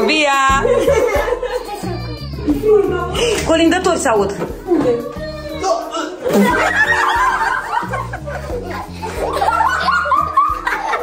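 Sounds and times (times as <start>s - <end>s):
background music: 0.0s - 11.0s
ho ho ho laugh: 6.2s - 11.0s.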